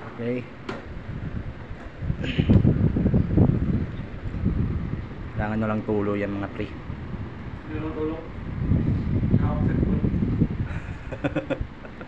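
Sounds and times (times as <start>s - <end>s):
air conditioner air buffeting microphone: 0.0s - 12.0s.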